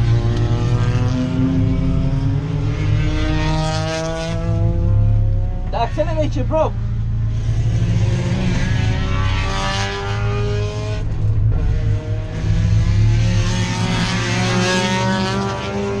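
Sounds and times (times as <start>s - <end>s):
race car engine droning: 0.0s - 16.0s.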